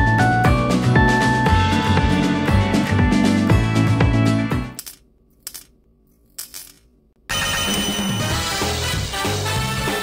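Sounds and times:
background music: 0:00.0 - 0:04.8, 0:07.3 - 0:10.0
keychain handling sounds: 0:04.8 - 0:06.9.

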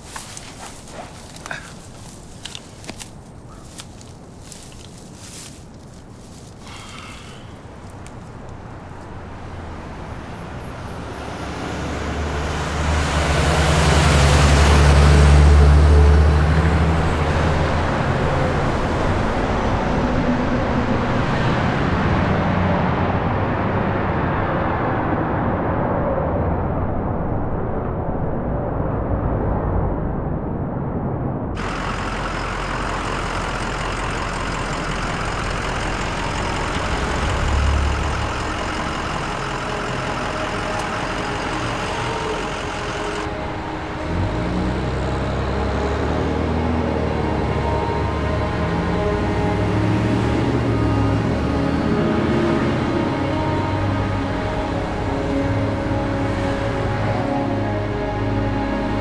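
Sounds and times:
road traffic noise: 0:00.0 - 0:30.1, 0:31.6 - 0:59.0
heavy vehicle rumbling: 0:00.0 - 0:59.0.

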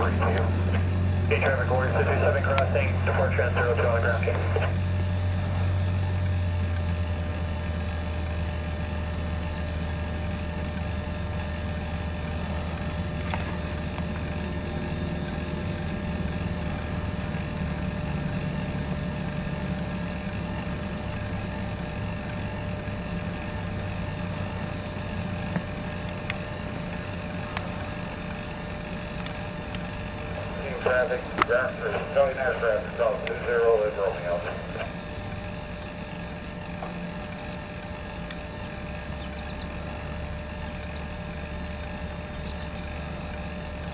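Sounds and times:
crickets chirping: 0:00.0 - 0:01.3, 0:04.9 - 0:06.4, 0:07.1 - 0:16.8, 0:19.2 - 0:22.0, 0:23.6 - 0:25.3
low hum: 0:00.0 - 0:43.9.

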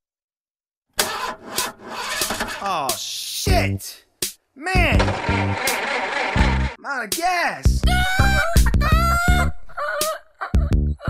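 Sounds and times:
car engine cranking and sputtering: 0:01.0 - 0:02.7, 0:04.9 - 0:06.8.

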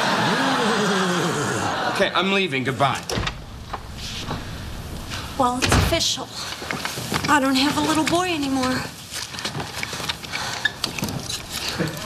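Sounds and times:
low room noise: 0:00.0 - 0:12.0
door shutting with a thump: 0:03.1 - 0:06.0.

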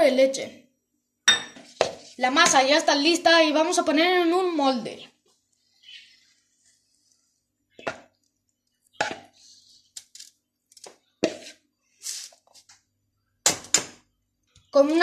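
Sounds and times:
spoon scraping and knocking bowl: 0:01.3 - 0:02.6, 0:09.0 - 0:09.4, 0:10.7 - 0:11.6
soft rustle: 0:05.2 - 0:07.5.

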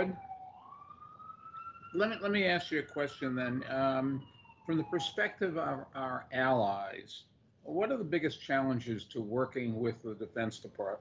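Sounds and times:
faint siren wailing: 0:00.0 - 0:08.1.

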